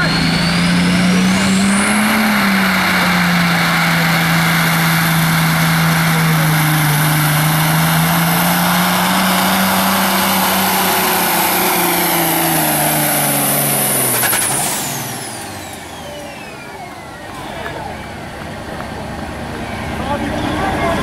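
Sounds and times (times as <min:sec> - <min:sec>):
diesel truck engine straining: 0:00.0 - 0:21.0.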